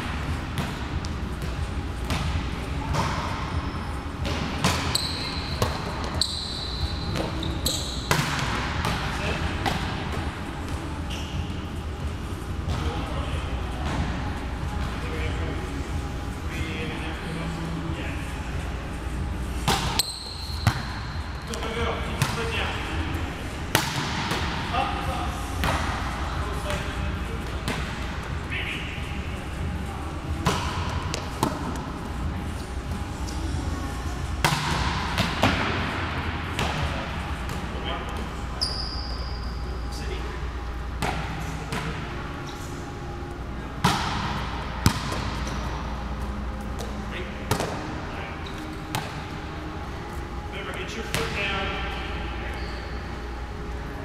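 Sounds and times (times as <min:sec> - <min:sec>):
volleyballs hit and bouncing: 0:00.0 - 0:03.6, 0:04.2 - 0:11.5, 0:12.6 - 0:13.2, 0:19.5 - 0:28.4, 0:30.2 - 0:33.5, 0:34.4 - 0:38.4, 0:41.0 - 0:42.2, 0:43.8 - 0:49.6
high squeaks: 0:04.9 - 0:08.1
murmur of voices: 0:20.9 - 0:38.7.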